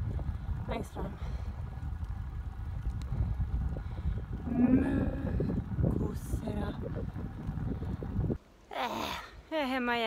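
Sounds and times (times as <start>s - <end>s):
bike rolling over asphalt: 0.0s - 8.4s
wind on microphone: 0.0s - 8.4s.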